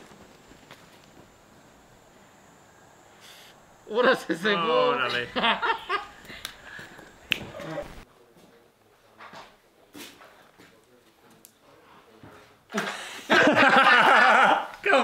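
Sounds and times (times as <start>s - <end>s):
man yelling: 3.9s - 5.3s, 14.5s - 15.0s.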